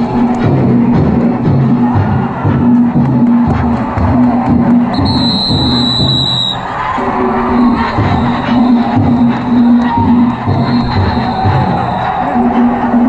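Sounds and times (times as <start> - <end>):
drums and gongs beating: 0.0 - 13.0
shrill steady whistle: 4.9 - 12.3.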